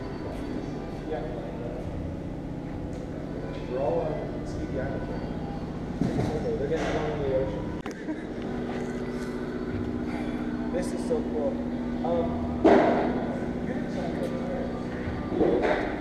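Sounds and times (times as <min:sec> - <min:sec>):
indistinct talking: 0:00.0 - 0:16.0
steady hum: 0:00.0 - 0:16.0.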